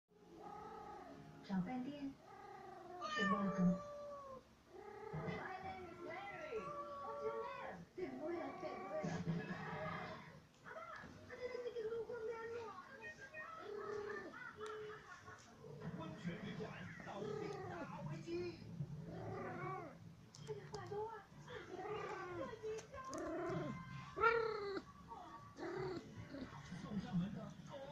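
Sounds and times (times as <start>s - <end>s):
cat meowing: 2.4s - 7.7s, 23.1s - 24.9s.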